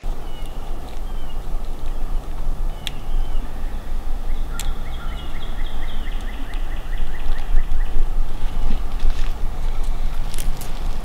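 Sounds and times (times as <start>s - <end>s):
turkey yelping: 0.0s - 8.3s
steady low rumble: 0.0s - 11.0s.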